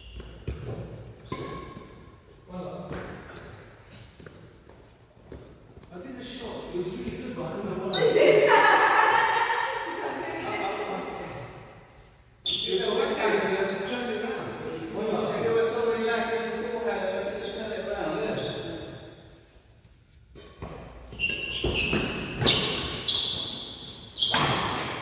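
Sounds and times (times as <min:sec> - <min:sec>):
rackets hitting shuttlecock: 0:24.3 - 0:25.0.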